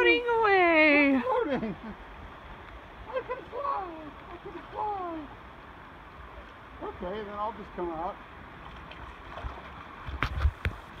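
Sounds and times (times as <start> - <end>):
water splashing from swimming strokes: 8.5 - 10.8.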